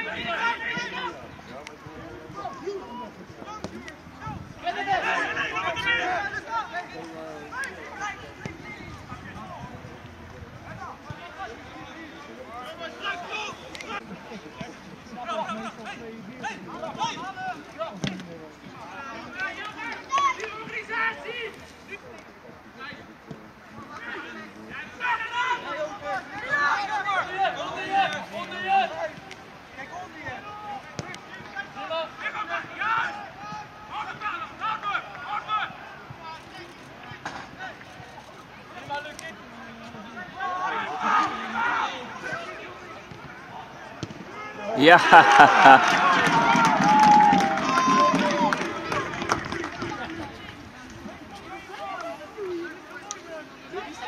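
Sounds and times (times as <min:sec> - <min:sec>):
steady outdoor background: 0:00.0 - 0:54.0.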